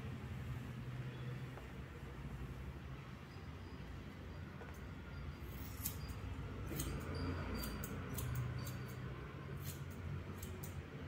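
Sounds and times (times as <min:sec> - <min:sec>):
scissors snipping hair: 0:06.7 - 0:11.0.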